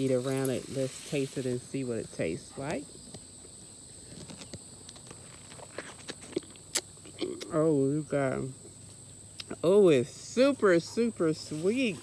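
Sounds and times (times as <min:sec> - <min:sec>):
insect trill: 0:00.0 - 0:12.0
person chewing peach: 0:04.1 - 0:07.6.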